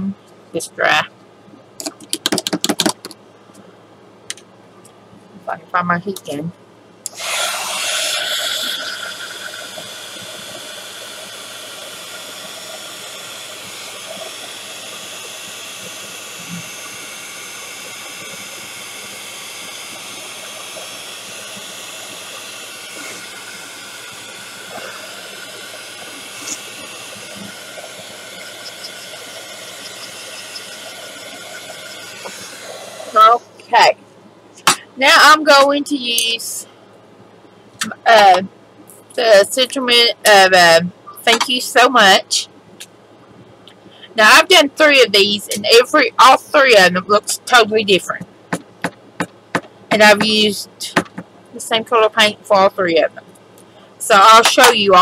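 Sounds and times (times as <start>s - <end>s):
heat tool blowing with whine: 7.0s - 33.9s.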